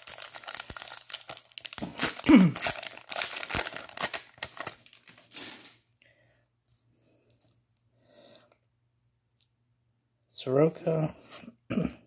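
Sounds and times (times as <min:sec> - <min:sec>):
wrapper tearing and crinkling: 0:00.0 - 0:05.9.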